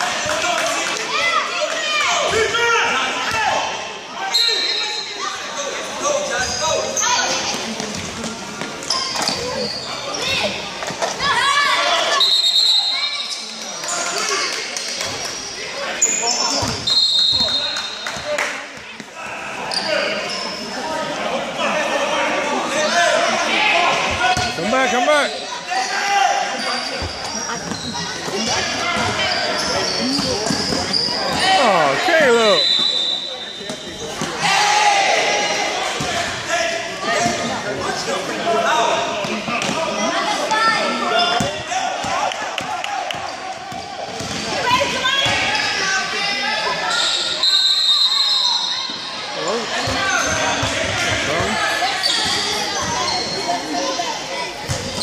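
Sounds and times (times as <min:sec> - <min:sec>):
players and spectators calling out: 0:00.0 - 0:55.0
high shoe squeals: 0:04.2 - 0:05.4, 0:06.2 - 0:07.5, 0:08.8 - 0:10.5, 0:12.1 - 0:14.3, 0:15.2 - 0:18.0, 0:19.6 - 0:20.8, 0:24.3 - 0:34.3, 0:46.8 - 0:54.0.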